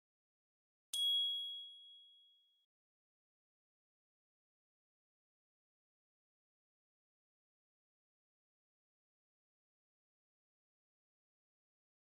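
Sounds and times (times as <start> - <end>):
bright electronic ding: 1.0 - 2.4.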